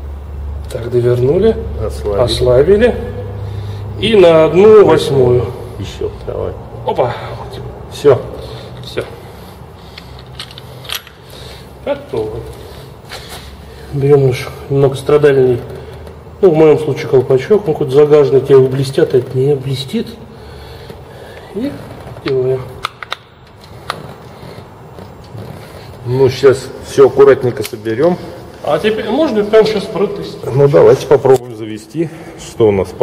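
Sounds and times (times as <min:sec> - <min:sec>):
faint steady hum: 0:00.0 - 0:33.0
rubber cap scraping: 0:23.5 - 0:26.1.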